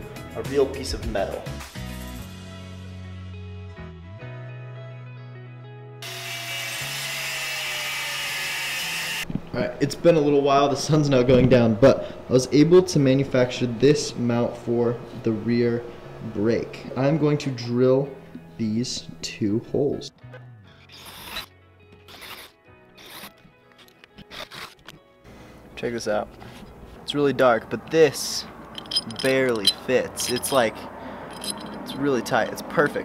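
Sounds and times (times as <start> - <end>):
background music: 0.0 - 7.6, 16.0 - 26.3
angle grinder cutting steel: 6.0 - 9.2, 20.9 - 21.5, 22.1 - 23.3
tool rasping on metal: 22.1 - 23.3.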